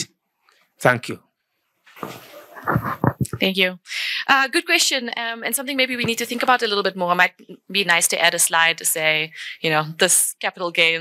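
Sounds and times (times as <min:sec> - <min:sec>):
microphone handling rustle: 0:01.9 - 0:03.4
dull microphone bumps: 0:01.9 - 0:03.5.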